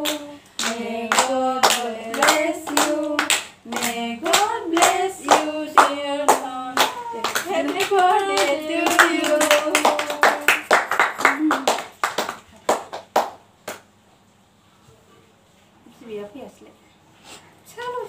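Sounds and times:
women singing: 0.0s - 10.7s
people clapping in time: 0.0s - 13.9s.

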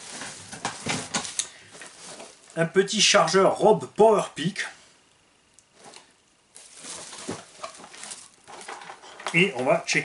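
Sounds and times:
bubble wrap and cardboard crinkling: 0.0s - 3.4s, 5.7s - 10.0s.

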